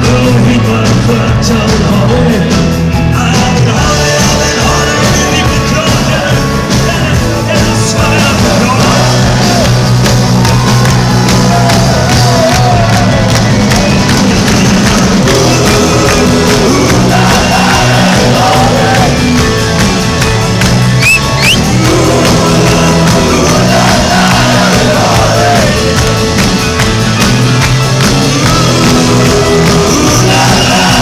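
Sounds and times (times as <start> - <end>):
audience shouting and singing: 0.0 - 31.0
rock band playing live: 0.0 - 31.0.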